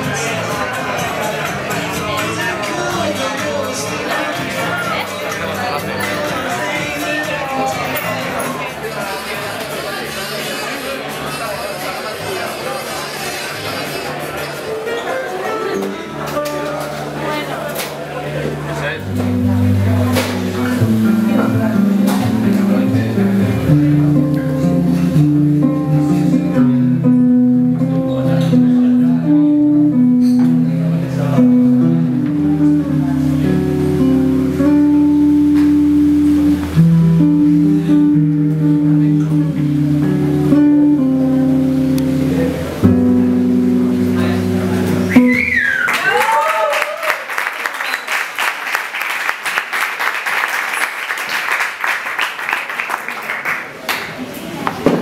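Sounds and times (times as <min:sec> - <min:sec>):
electric bass melody: 0:15.1 - 0:45.8
audience applause and cheering: 0:45.3 - 0:54.3.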